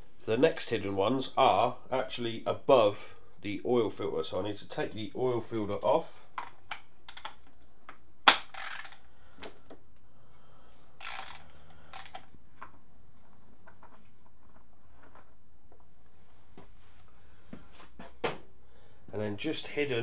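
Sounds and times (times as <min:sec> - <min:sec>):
ratchet rasp: 0:11.0 - 0:11.4.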